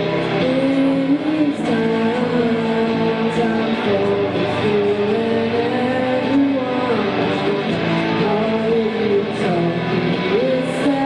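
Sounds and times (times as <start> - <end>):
amplified electric guitar: 0.0 - 11.0.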